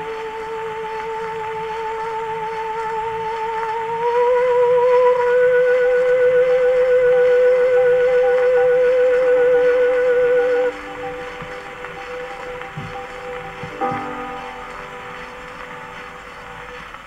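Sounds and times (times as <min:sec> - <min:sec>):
soprano singing with vibrato: 0:00.0 - 0:16.6
record surface hiss: 0:00.0 - 0:17.0
sustained accompaniment chords: 0:00.0 - 0:17.0.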